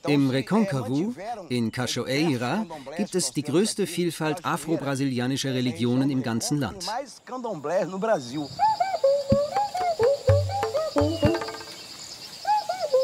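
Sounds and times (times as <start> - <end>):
man's voice: 0.0 - 7.0
high insect trill: 8.1 - 13.0
animal calls: 8.3 - 13.0.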